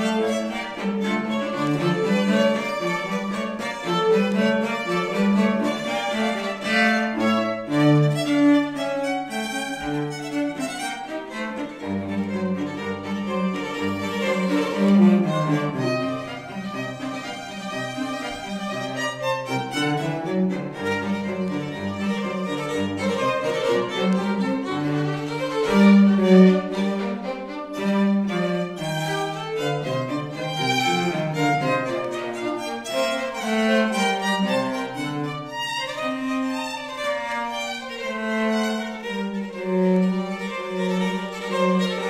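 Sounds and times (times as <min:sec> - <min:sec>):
bowed string ensemble playing: 0:00.0 - 0:42.0.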